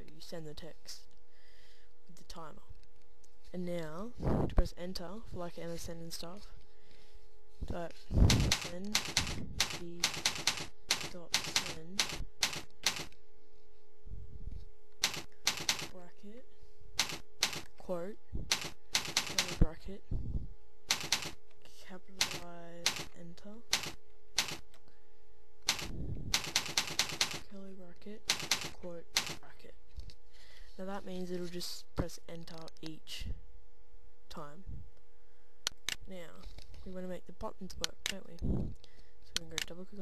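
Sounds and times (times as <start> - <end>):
keyboard typing clicks: 8.3 - 13.2, 15.0 - 16.0, 17.0 - 17.7, 18.5 - 19.6, 20.9 - 21.4, 22.2 - 23.1, 23.7 - 24.8, 25.7 - 27.4, 28.3 - 29.4.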